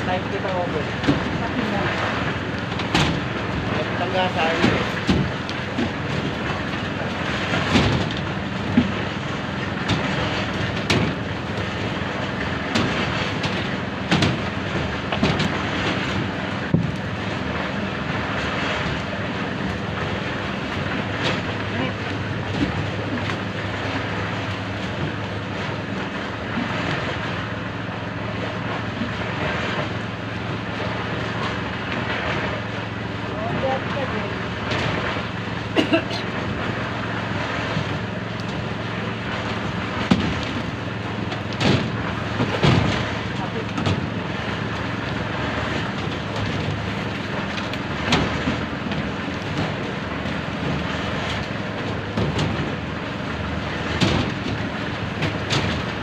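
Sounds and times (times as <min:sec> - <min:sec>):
workers' voices: 0:00.0 - 0:02.2, 0:03.6 - 0:05.0
metal clanks and knocks: 0:12.6 - 0:17.1.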